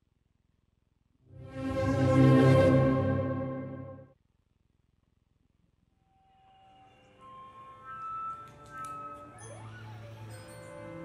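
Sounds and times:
wind and string ensemble: 1.3 - 4.1.

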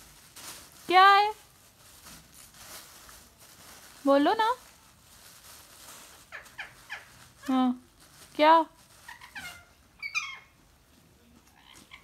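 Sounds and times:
parrot chirps: 6.3 - 7.2, 9.0 - 10.6.

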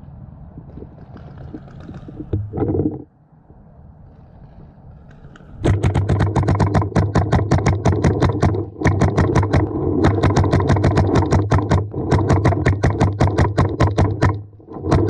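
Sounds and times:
paintball marker rapid firing: 5.6 - 15.0.

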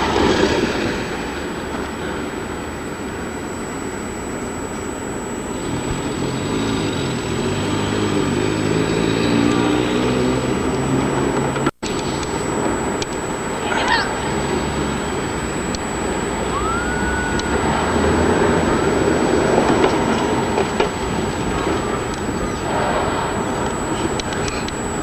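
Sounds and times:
low engine hum: 4.9 - 25.0.

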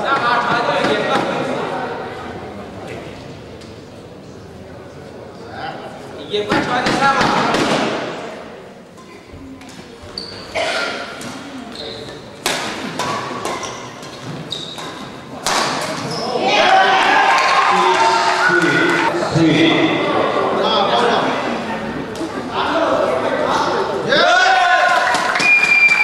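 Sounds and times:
spectators' voices: 0.0 - 26.0
shoes squeaking on court: 9.2 - 16.4
racket striking shuttlecock: 12.4 - 14.2, 14.8 - 16.0.

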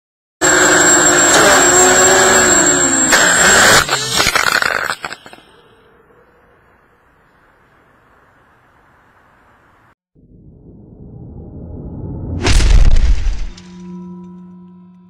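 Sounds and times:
drone motors whining: 0.4 - 7.2
drone crash clatter: 10.2 - 15.0.

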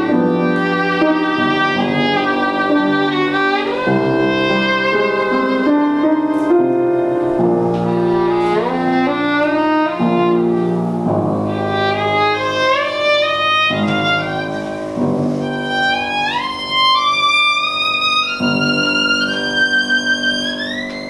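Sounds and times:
piano chords: 0.0 - 21.0
violin melody: 0.0 - 21.0.

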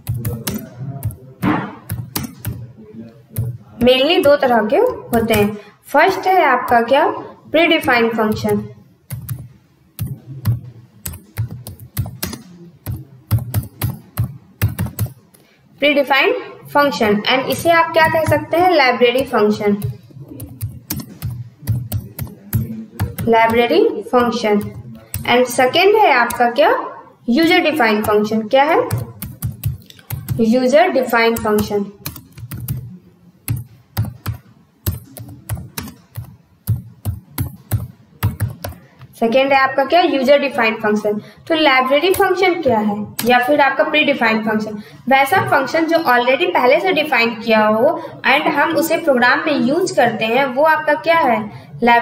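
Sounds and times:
computer keyboard typing: 0.0 - 7.0, 7.7 - 15.4, 16.8 - 26.6, 27.3 - 39.2, 40.9 - 43.6.

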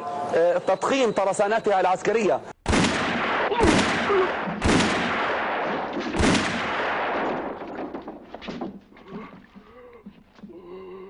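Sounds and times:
revolver gunshots with echo: 2.6 - 8.0.

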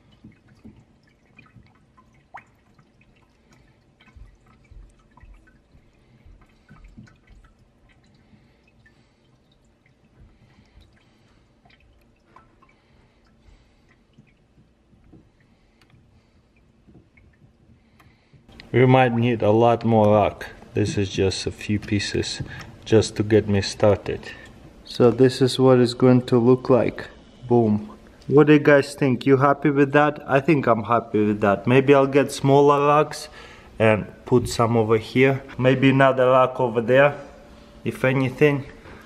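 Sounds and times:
water dripping: 0.0 - 39.0.

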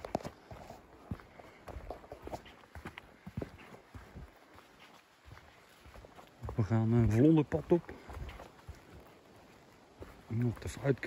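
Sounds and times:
footsteps on wet stony trail: 0.0 - 11.0.

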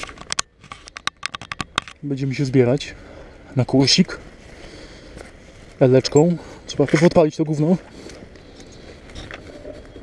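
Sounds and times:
clicks and taps on camera: 0.0 - 2.0.

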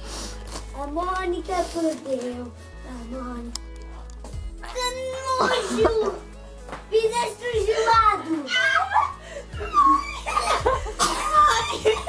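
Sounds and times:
girls laughing: 7.7 - 12.0.

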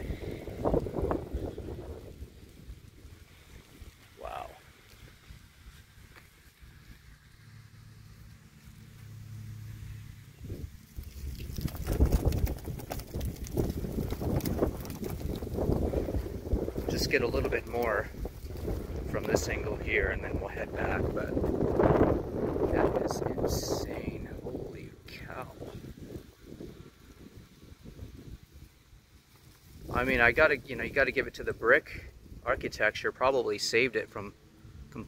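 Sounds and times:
wind buffeting microphone: 0.0 - 7.1, 10.4 - 28.9, 29.7 - 32.9.

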